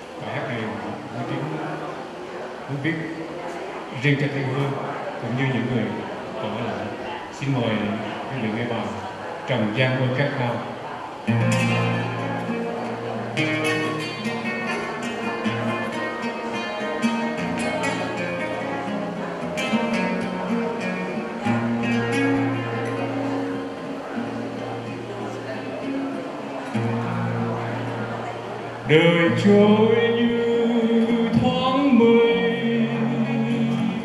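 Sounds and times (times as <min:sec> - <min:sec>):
acoustic guitar strumming chords: 0:10.7 - 0:34.0.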